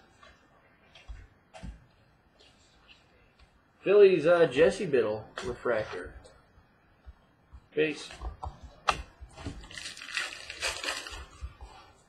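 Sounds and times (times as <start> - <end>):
wrapper crinkling: 9.6 - 11.4.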